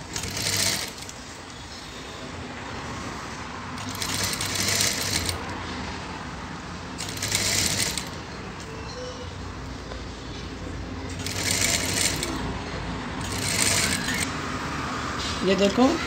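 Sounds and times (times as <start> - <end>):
sewing machine stitching: 0.0 - 1.2, 3.8 - 5.4, 7.0 - 8.2, 11.1 - 12.4, 13.2 - 14.3.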